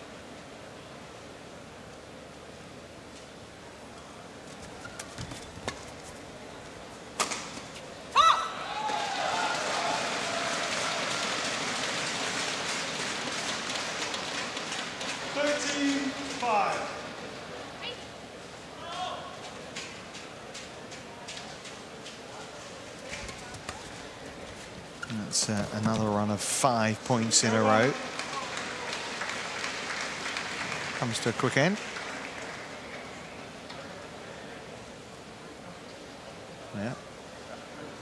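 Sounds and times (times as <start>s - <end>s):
racket hitting shuttlecock: 7.2s - 7.6s
crowd applause and cheering: 8.5s - 16.9s, 27.1s - 33.6s
player shouting: 18.8s - 19.4s.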